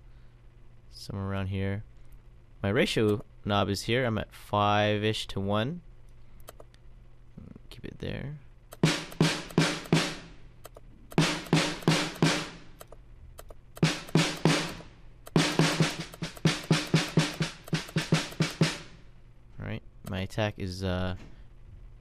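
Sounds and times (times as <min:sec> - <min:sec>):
snare drum hits: 0:08.8 - 0:10.3, 0:11.2 - 0:12.6, 0:13.8 - 0:19.0.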